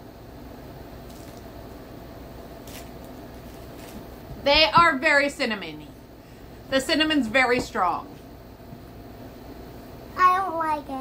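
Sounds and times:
low room hum: 0.0 - 11.0
wafer bar crunching: 1.0 - 1.5, 2.6 - 4.2.

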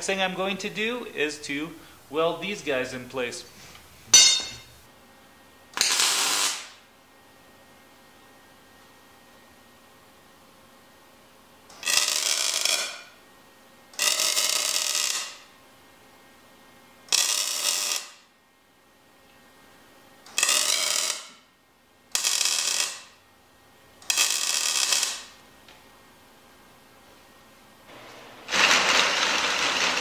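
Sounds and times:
welder crackling bursts: 5.8 - 6.8, 11.8 - 13.0, 14.0 - 15.4, 17.1 - 18.2, 20.4 - 21.3, 22.1 - 23.1, 24.0 - 25.4, 28.5 - 30.0.

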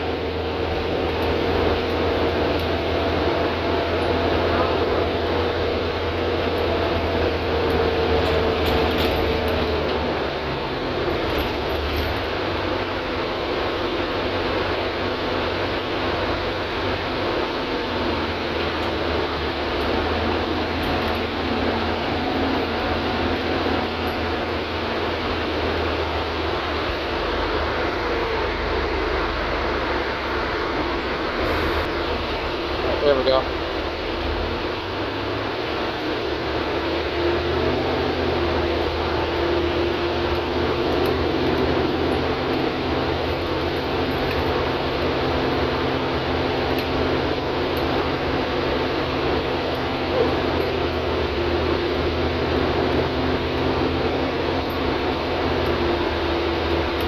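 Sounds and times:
bus engine drone: 0.0 - 57.0
road noise: 0.0 - 57.0
whine: 0.0 - 57.0.

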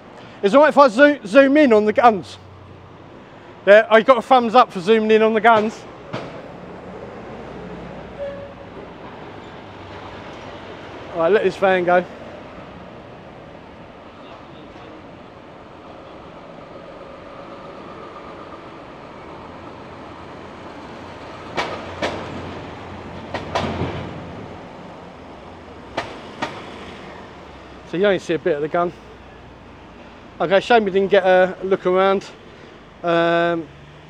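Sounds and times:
van engine passing: 0.0 - 14.3, 15.1 - 34.0
sharp knocks: 5.5 - 6.6, 21.5 - 22.5, 23.3 - 24.2.

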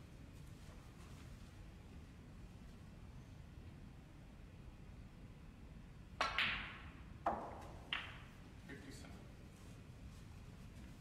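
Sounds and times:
cue tip striking ball: 6.2 - 8.3
snooker balls clacking: 6.2 - 8.4.

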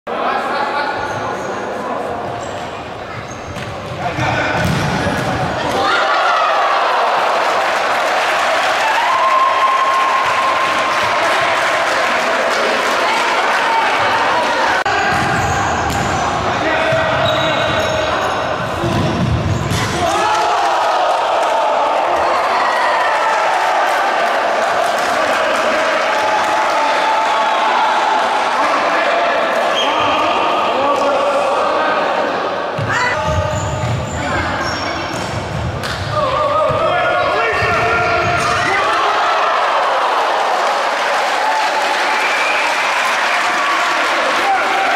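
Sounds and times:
play on a wooden court: 0.2 - 6.8, 8.8 - 25.2, 26.3 - 39.1
ball kicked and bouncing on wooden court: 3.5 - 5.5
echoing shouts: 4.0 - 35.1, 36.0 - 44.9
crowd cheering: 4.3 - 33.4, 35.7 - 44.9.

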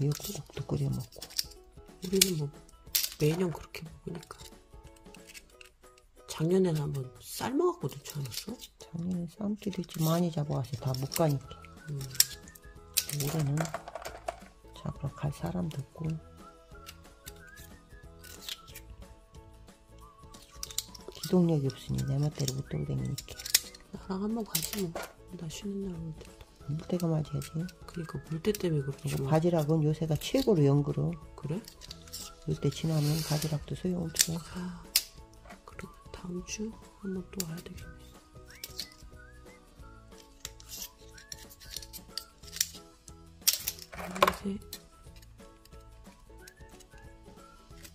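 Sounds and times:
background music with held notes: 0.0 - 47.9
knife clicking and scraping shell: 0.1 - 6.1, 7.9 - 8.8, 9.7 - 14.5, 16.7 - 18.9, 20.0 - 23.9, 31.6 - 35.7, 38.5 - 39.1, 40.1 - 47.1.

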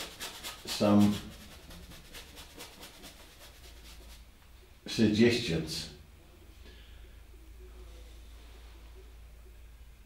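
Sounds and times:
paintbrush strokes on canvas: 0.0 - 4.4.

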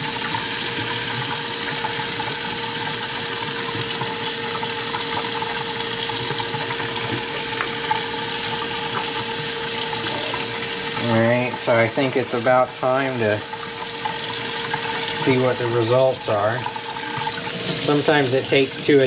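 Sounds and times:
faucet running into a metal sink: 0.0 - 19.0.

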